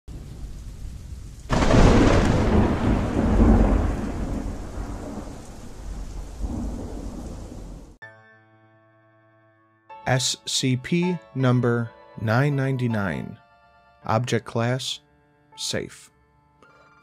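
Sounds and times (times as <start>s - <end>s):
steady rain: 0.1s - 8.0s
thunder: 0.1s - 8.0s.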